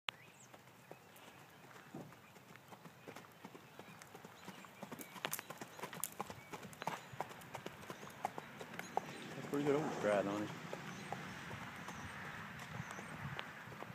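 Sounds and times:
hoofbeats on gravel: 0.2 - 13.9.

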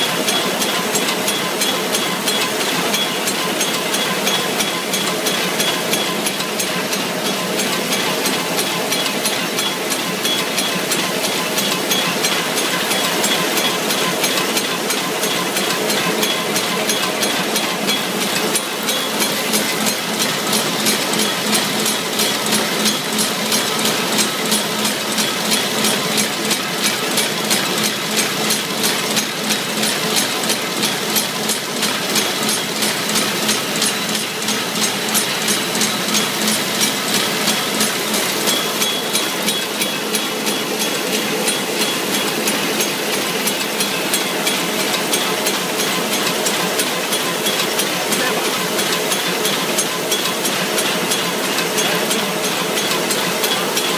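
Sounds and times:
bag making machine clacking: 0.0 - 53.9.

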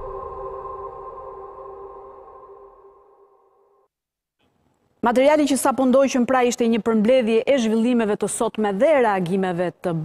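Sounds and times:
sombre background music: 0.0 - 3.9.

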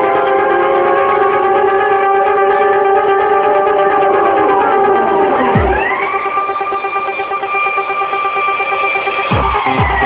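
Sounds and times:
held synthesizer chord: 0.0 - 9.9
fast pulsing synth note: 0.0 - 10.0.

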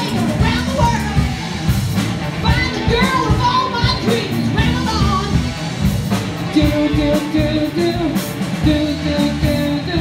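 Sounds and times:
drums: 0.0 - 10.0
electric bass: 0.0 - 10.0
woman singing into a microphone: 2.4 - 5.4.

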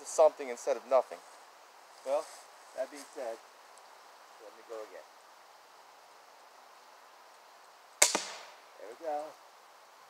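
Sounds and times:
crossbow string snap: 8.0 - 8.6.

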